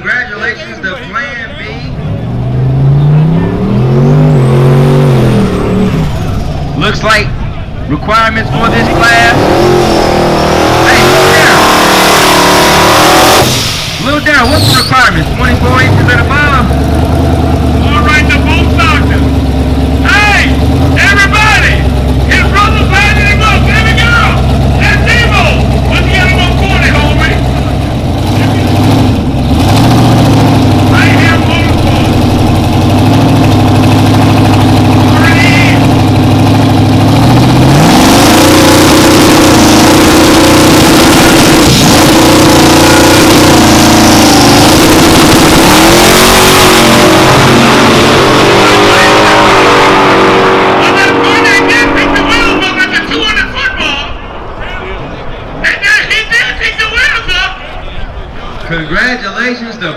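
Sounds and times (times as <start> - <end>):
race car engine idling and revving: 0.0 - 58.7.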